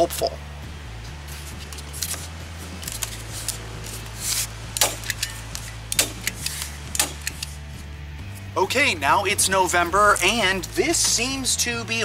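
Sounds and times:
staple gun clacks: 0:05.9 - 0:07.5.

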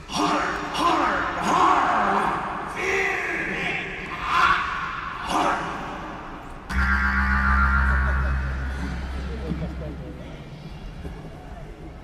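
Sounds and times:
distorted electric guitar chord: 0:06.7 - 0:09.4
deep sustained bass note: 0:06.7 - 0:10.6.

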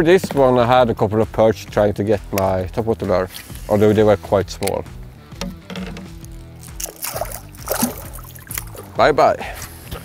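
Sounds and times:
background music with low notes: 0:00.0 - 0:10.0
fish splashing in water: 0:06.8 - 0:08.9.

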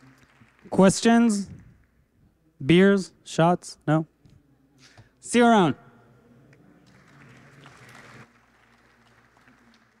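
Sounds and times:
audience applause: 0:00.0 - 0:00.8, 0:06.8 - 0:10.0.

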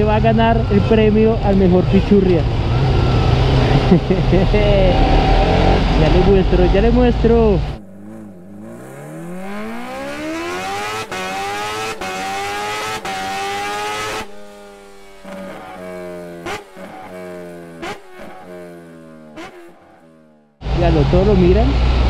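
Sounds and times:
engine revving rising in pitch: 0:00.0 - 0:20.9
steady engine note: 0:00.0 - 0:22.0.

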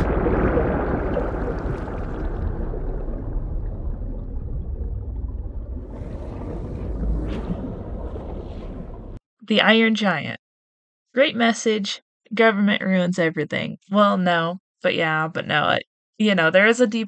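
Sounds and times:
deep rumbling noise: 0:00.0 - 0:09.2.

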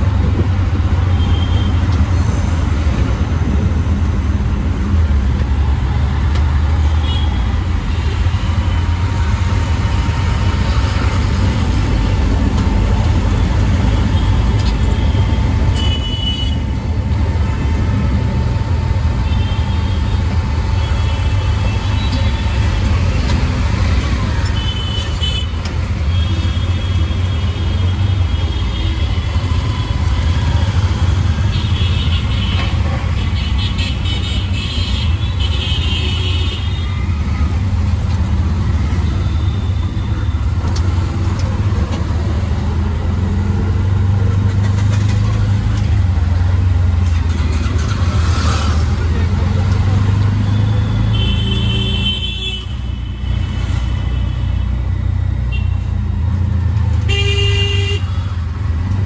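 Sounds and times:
road noise: 0:00.0 - 0:59.0
auto rickshaw engine droning: 0:36.7 - 0:52.0
traffic horns tooting: 0:50.3 - 0:54.8, 0:57.0 - 0:58.3.

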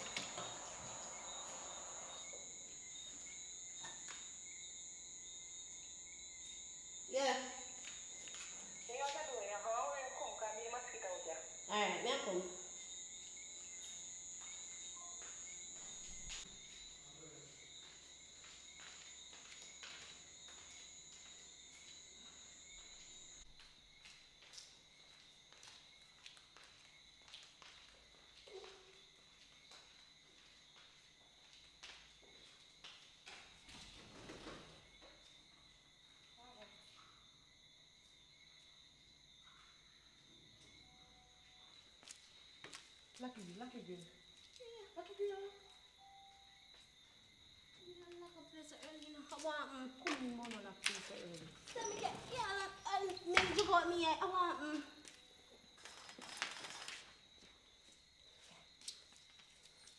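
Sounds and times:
crickets chirring: 0:00.0 - 0:59.9.

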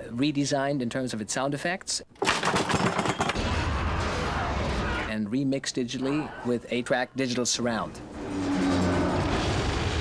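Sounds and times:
rushing rumbling sound effects: 0:07.9 - 0:10.0
sustained music tones: 0:07.9 - 0:10.0.

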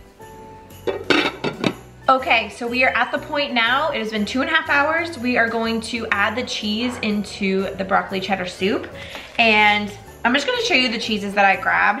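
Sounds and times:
quiet background music: 0:00.0 - 0:12.0
glass lid clinking on ceramic: 0:00.8 - 0:01.8.

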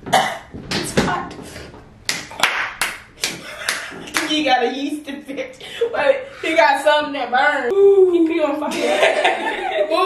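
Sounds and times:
person clapping hands: 0:02.1 - 0:04.4.

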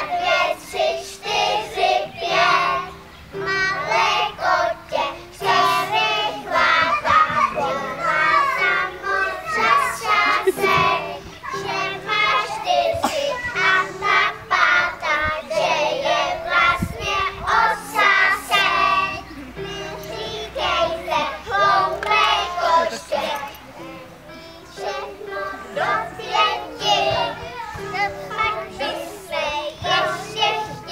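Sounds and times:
young children singing: 0:00.0 - 0:30.9.

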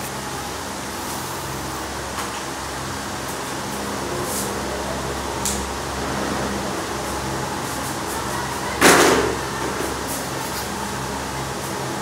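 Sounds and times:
mechanical hum and hiss: 0:00.0 - 0:12.0.

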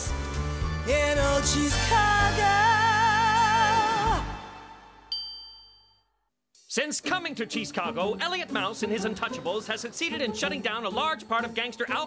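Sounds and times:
high ding twinkle effect: 0:05.1 - 0:06.2.

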